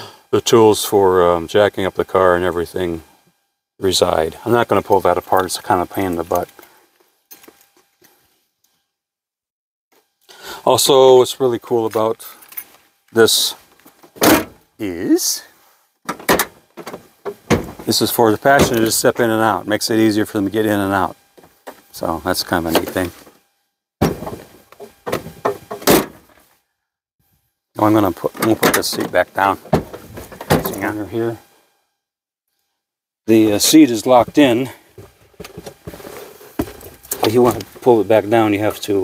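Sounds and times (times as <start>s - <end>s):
tailgate clattering: 14.2s - 14.6s, 16.1s - 18.0s, 24.0s - 26.4s, 28.4s - 30.8s
tailgate latching thunk: 14.2s - 14.6s, 16.1s - 17.9s, 24.0s - 26.3s.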